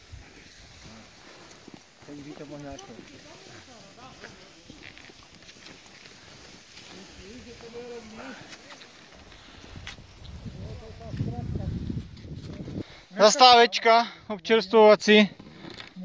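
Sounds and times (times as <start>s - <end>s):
skis and poles on snow: 0.0s - 13.8s, 14.4s - 16.0s
people talking: 2.1s - 4.8s, 6.9s - 9.0s, 10.6s - 11.8s.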